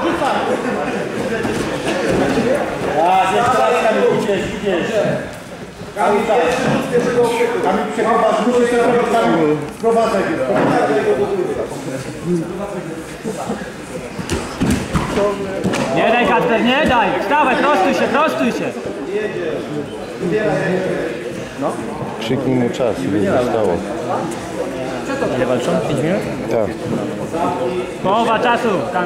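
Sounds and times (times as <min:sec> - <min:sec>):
men calling out and talking: 0:00.0 - 0:29.0.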